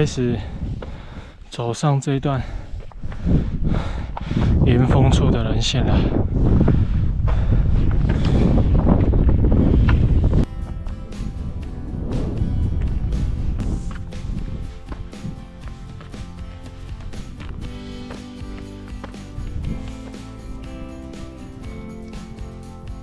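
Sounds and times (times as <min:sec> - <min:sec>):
wind buffeting microphone: 0:00.0 - 0:01.5, 0:02.2 - 0:18.3, 0:19.3 - 0:22.5
background music with sustained notes: 0:10.4 - 0:23.0.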